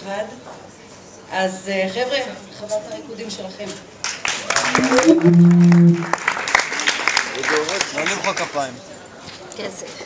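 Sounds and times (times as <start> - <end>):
audience clapping: 4.0 - 8.7
loud steady low note: 4.8 - 6.2.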